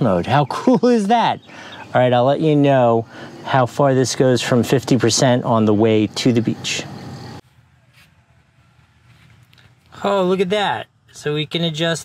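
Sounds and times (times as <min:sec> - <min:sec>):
man speaking: 0:00.0 - 0:07.0, 0:09.9 - 0:12.0
faint background noise: 0:00.0 - 0:12.0.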